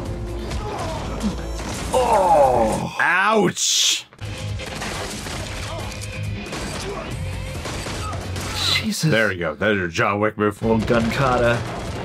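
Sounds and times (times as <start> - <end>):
action film music: 0.0 - 2.9, 4.1 - 9.7, 10.4 - 12.0.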